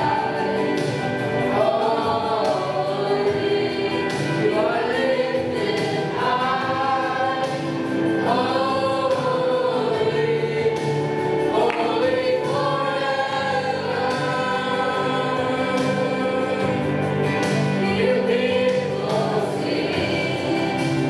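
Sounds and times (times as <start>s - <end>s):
youth choir singing a hymn: 0.0s - 21.0s.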